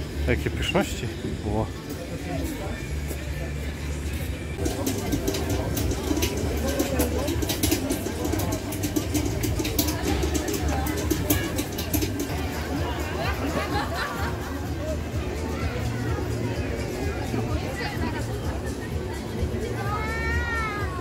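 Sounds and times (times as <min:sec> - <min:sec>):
background music: 0:00.0 - 0:21.0
crowd chatter: 0:00.0 - 0:21.0
hot oil crackling in fryer: 0:04.6 - 0:12.8.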